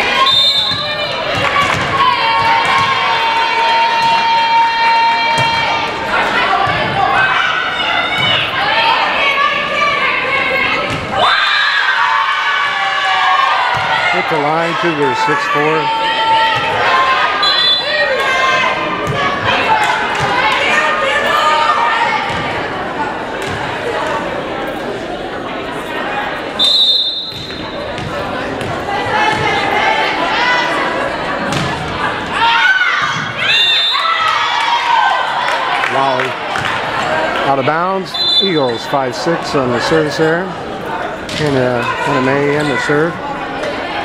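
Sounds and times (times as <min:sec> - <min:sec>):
people calling and shouting: 0:00.0 - 0:44.0
referee's whistle: 0:00.2 - 0:01.0, 0:17.4 - 0:18.0, 0:26.6 - 0:27.9, 0:33.5 - 0:34.2, 0:38.1 - 0:39.0
volleyball thuds: 0:27.2 - 0:29.6.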